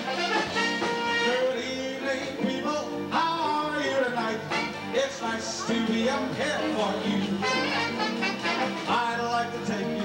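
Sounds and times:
live band music with brass: 0.0 - 10.0
man singing: 0.8 - 10.0.

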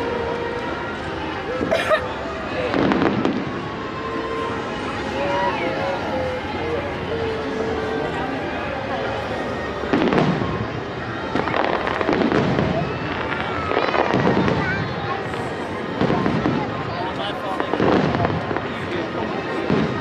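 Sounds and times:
voices: 0.0 - 20.0
fireworks booming: 2.5 - 3.9, 9.8 - 20.0.

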